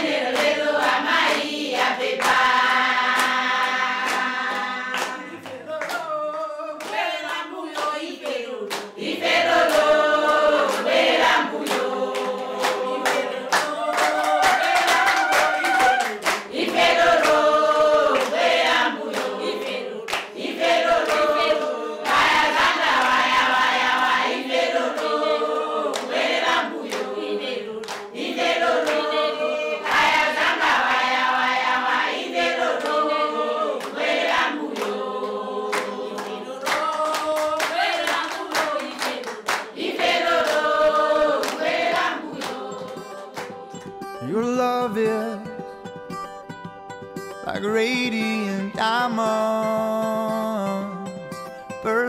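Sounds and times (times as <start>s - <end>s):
hand clapping in time: 0.0s - 30.8s, 32.4s - 44.3s
group singing a cappella: 0.0s - 44.3s.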